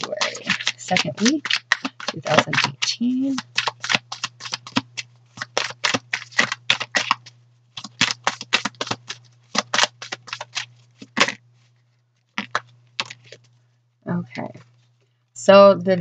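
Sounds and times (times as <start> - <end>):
cards being shuffled: 0.0 - 11.7, 12.4 - 13.6.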